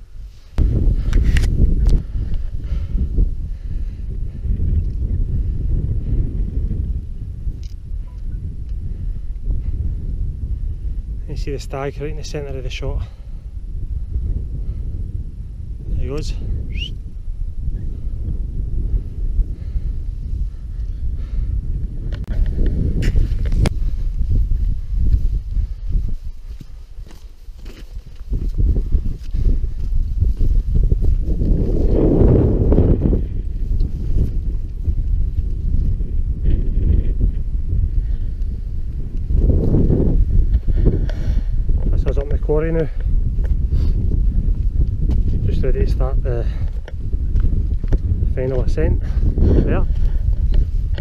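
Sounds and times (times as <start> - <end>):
wind buffeting microphone: 0.0 - 51.0.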